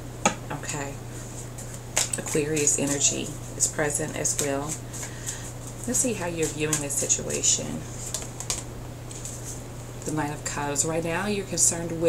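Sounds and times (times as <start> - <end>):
card rustling: 1.2 - 9.6
cards clicking: 1.6 - 3.0, 8.0 - 9.3.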